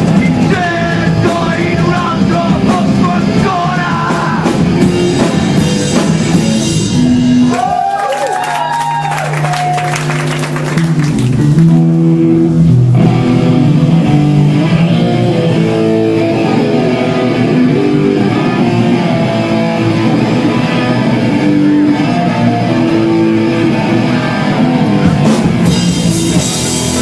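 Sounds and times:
hardcore punk band playing: 0.0 - 27.0.

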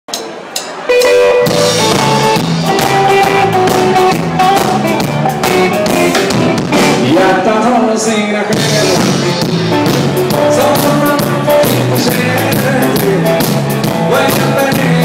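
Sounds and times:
drum kit beat: 0.1 - 7.6, 8.5 - 15.0
live band playing: 0.1 - 15.0
electric guitar melody: 0.8 - 15.0.

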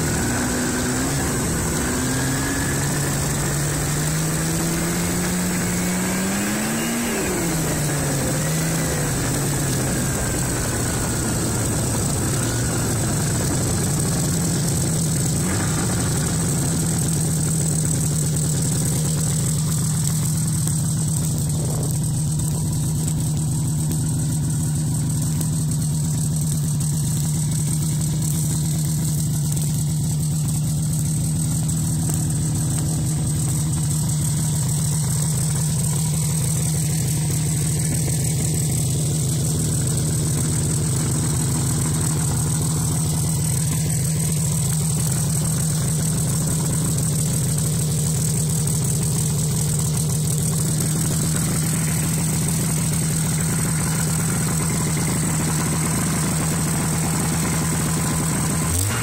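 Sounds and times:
snowmobile engine idling: 0.0 - 59.0.

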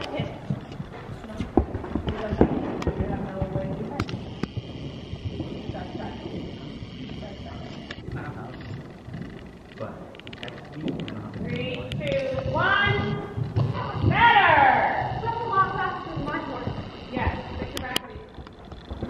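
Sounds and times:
horse hoofbeats on soft dirt: 0.0 - 9.6, 10.8 - 19.0.

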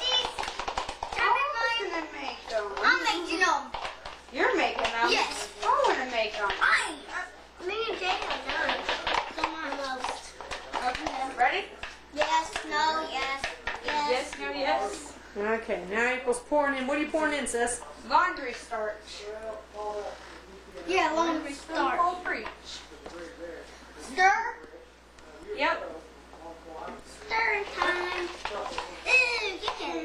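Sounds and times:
children chattering: 0.0 - 0.5, 27.3 - 30.0.

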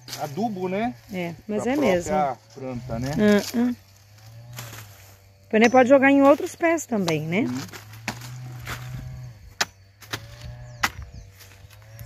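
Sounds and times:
machete chopping plant stem: 7.0 - 11.8.

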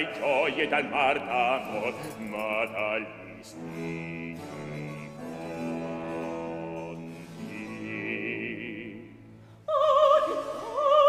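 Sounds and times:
harpsichord chords: 0.1 - 9.2.

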